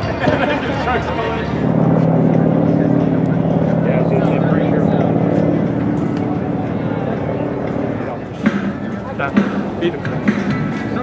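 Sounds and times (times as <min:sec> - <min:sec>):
vehicle engine humming: 0:00.0 - 0:11.0
voices: 0:00.0 - 0:11.0.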